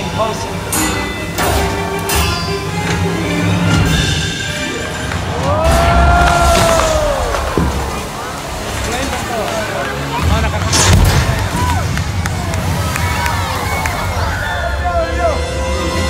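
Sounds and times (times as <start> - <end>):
crowd shouting and cheering: 4.7 - 16.0
explosion: 10.4 - 11.9.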